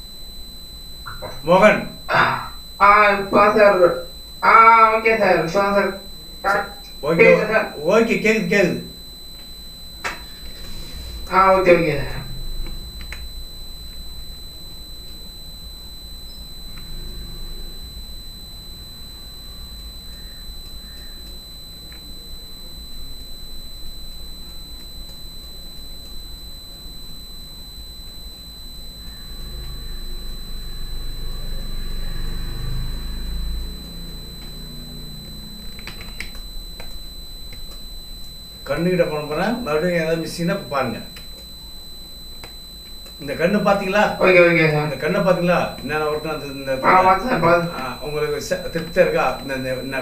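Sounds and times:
high-pitched electronic whine: 0.0 - 50.0
low hum: 0.0 - 50.0
faint low murmur: 5.1 - 50.0.

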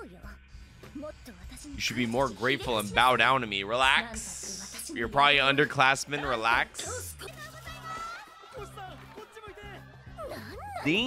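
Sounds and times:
background music: 0.0 - 11.0
high arching voice: 4.0 - 8.2.

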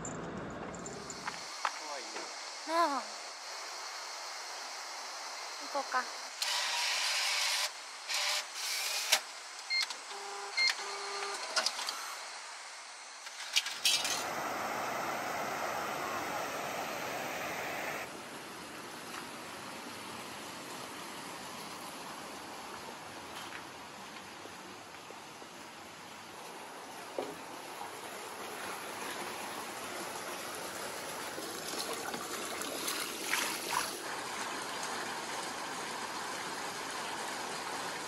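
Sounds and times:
river rushing over weir: 14.2 - 18.8.

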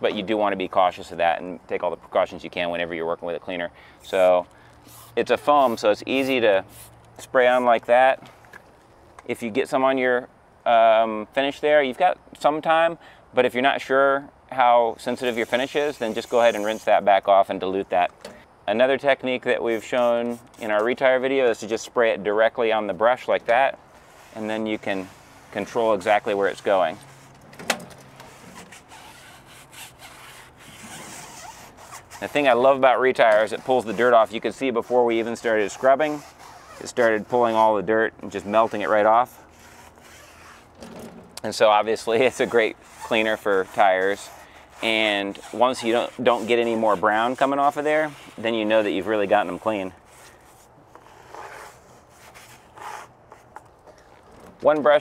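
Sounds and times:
brush scrubbing a tire: 4.0 - 8.1, 14.7 - 18.0, 18.8 - 27.4, 28.2 - 53.6.

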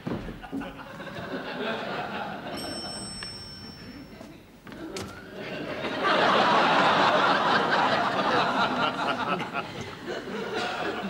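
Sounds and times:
studio audience laughter: 0.4 - 2.6, 5.3 - 11.0
high steady tone: 2.5 - 4.4.

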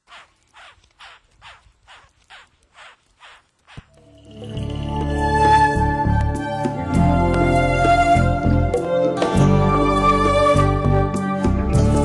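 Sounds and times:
harsh animal calls: 0.0 - 3.9.

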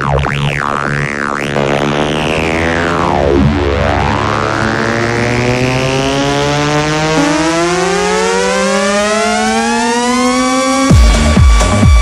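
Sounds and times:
steady low tone: 0.0 - 9.4
rising synthesizer chord: 0.0 - 12.0
drums: 10.9 - 12.0.

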